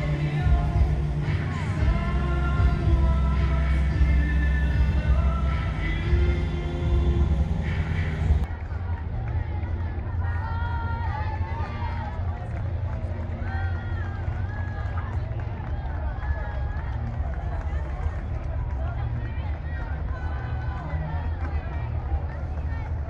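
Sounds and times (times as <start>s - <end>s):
crowd voices chattering: 0.0s - 23.0s
low engine rumble: 0.0s - 23.0s.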